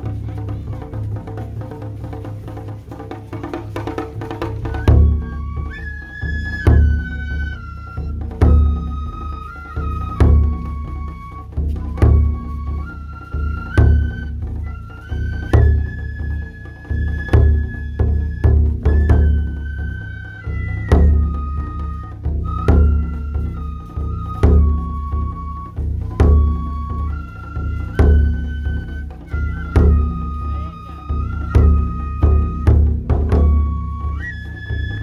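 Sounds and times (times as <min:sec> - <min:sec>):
bamboo flute melody: 0:00.0 - 0:35.0
taiko drum strokes: 0:00.0 - 0:35.0.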